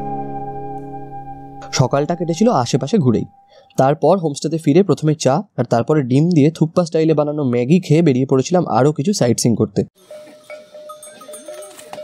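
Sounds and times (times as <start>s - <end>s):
animal bells ringing: 10.0s - 12.0s.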